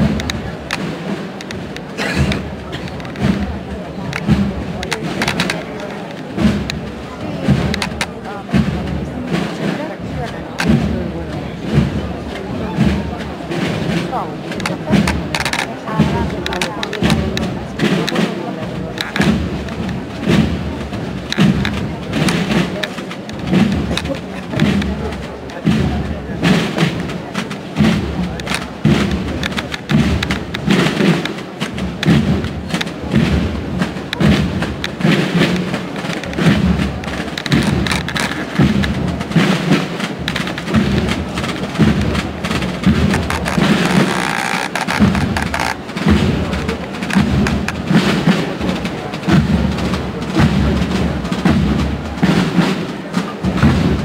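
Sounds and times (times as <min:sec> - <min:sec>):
crowd voices: 0:00.0 - 0:54.0
drums beating slow march: 0:00.0 - 0:54.0
sharp drum strikes: 0:00.0 - 0:54.0.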